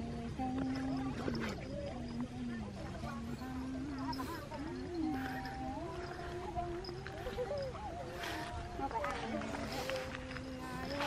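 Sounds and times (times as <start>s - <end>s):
woman singing folk song: 0.0s - 11.0s.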